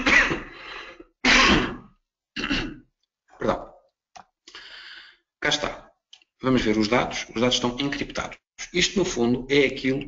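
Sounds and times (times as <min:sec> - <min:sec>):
man clearing throat and coughing: 0:00.0 - 0:00.6, 0:01.2 - 0:02.9.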